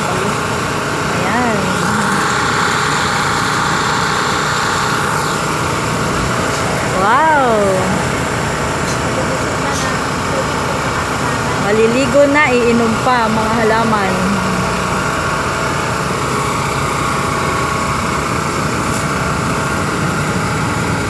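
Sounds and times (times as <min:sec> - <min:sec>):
truck motor droning: 0:00.0 - 0:21.0
water spraying from hose: 0:00.0 - 0:21.0.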